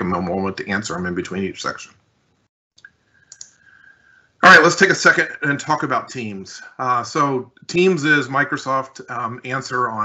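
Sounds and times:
faint short clicks: 0:02.8 - 0:03.6.

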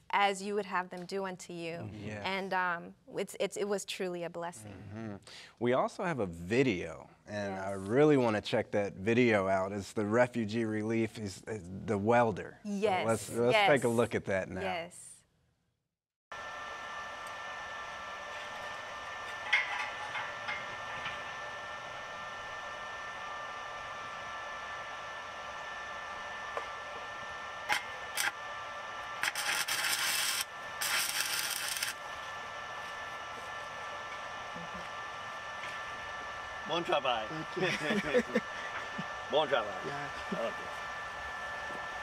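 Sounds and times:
welding machine hum: 0:16.3 - 0:42.0
welding hiss: 0:17.1 - 0:42.0
welding arc clicks: 0:27.6 - 0:28.4, 0:29.0 - 0:32.1.

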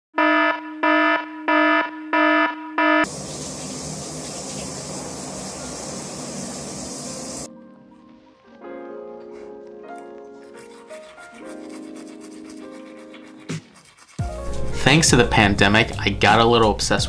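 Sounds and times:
electronic alarm beeping: 0:00.2 - 0:03.1
shower running: 0:03.0 - 0:07.5.

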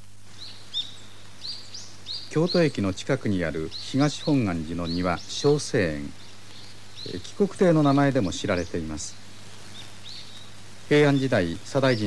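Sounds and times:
outdoor background hiss: 0:00.0 - 0:12.0
small birds chirping: 0:00.0 - 0:12.0.

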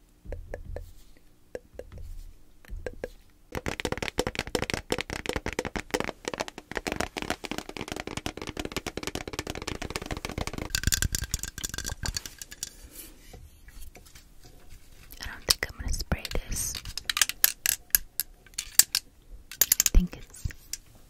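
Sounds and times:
tapping on a metal tin: 0:01.6 - 0:12.7.

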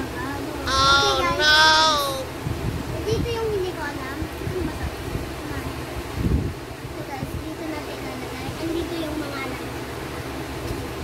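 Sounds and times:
girl singing held notes: 0:00.6 - 0:02.4.

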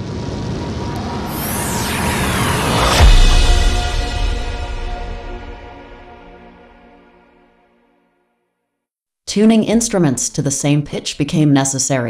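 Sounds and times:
swooshing sweeps: 0:00.0 - 0:07.4.

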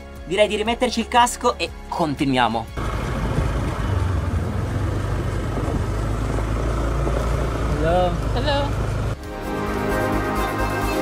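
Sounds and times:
road noise: 0:02.5 - 0:10.4
scooter engine running: 0:02.8 - 0:09.2.

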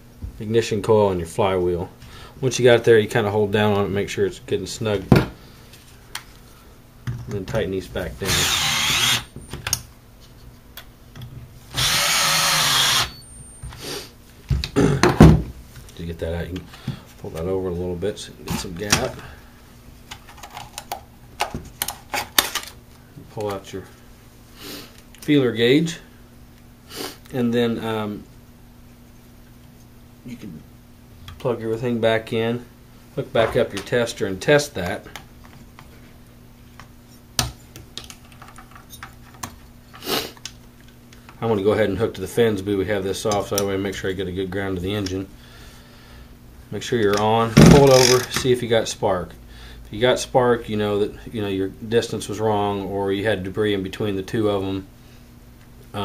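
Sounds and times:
cordless drill tightening screws: 0:08.2 - 0:09.3, 0:11.8 - 0:13.2, 0:47.9 - 0:48.3
handling knocks and clunks: 0:47.5 - 0:48.5.

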